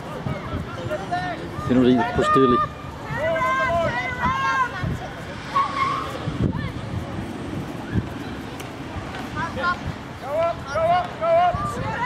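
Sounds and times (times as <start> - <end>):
spectators shouting encouragement: 0.0 - 7.0, 9.2 - 12.0
outdoor background noise: 0.0 - 12.0.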